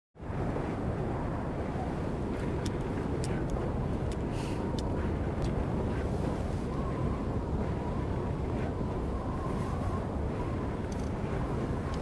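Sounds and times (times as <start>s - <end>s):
low rumble inside a car: 0.3s - 12.0s.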